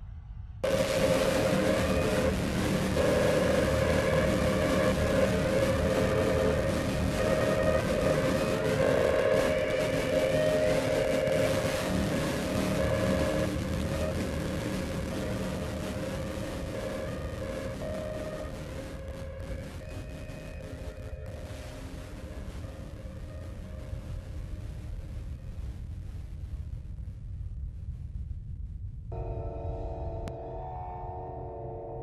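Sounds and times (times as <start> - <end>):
dense sustained drone: 0.0 - 27.3, 28.8 - 32.0.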